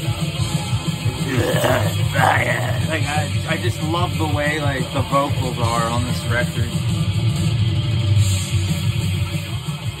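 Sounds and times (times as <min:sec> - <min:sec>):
death metal through speakers: 0:01.3 - 0:03.1.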